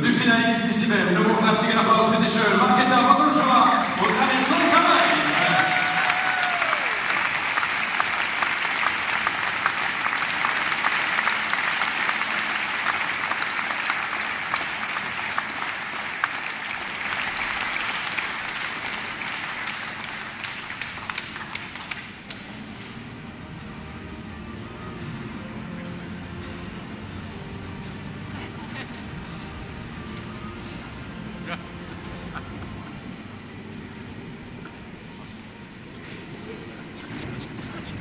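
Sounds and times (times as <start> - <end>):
audience applause: 3.3 - 22.8.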